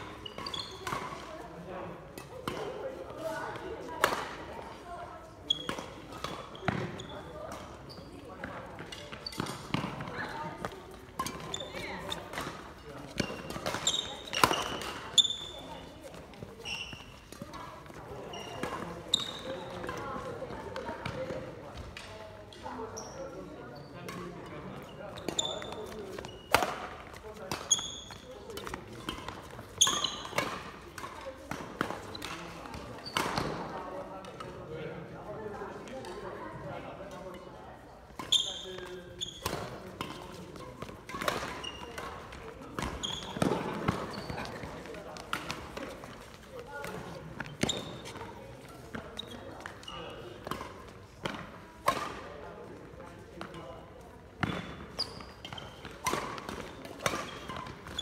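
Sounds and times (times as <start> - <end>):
shoes squeaking on floor: 0.0 - 1.4, 5.2 - 20.1, 22.6 - 33.7, 38.2 - 52.2, 54.4 - 58.0
racket striking shuttlecock: 26.5 - 33.6, 39.4 - 46.2, 50.4 - 52.2.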